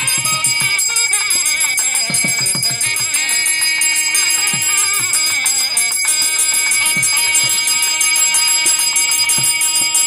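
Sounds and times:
brass hand bell ringing: 0.0s - 10.0s
music with sustained tones: 0.0s - 10.0s.

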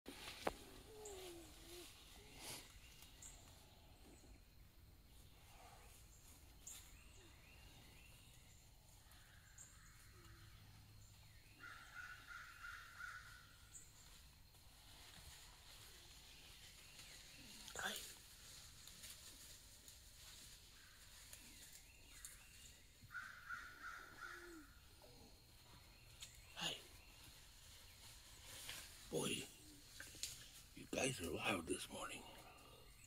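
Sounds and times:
faint bird calls: 0.1s - 14.2s, 20.4s - 33.0s.

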